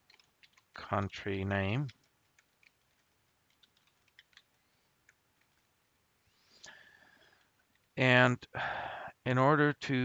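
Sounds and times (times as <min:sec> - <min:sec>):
faint keyboard keystrokes: 0:00.0 - 0:05.7.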